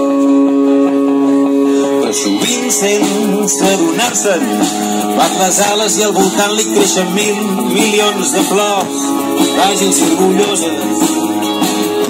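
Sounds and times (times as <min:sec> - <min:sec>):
guitar: 0:00.0 - 0:12.0
live band music: 0:00.0 - 0:12.0.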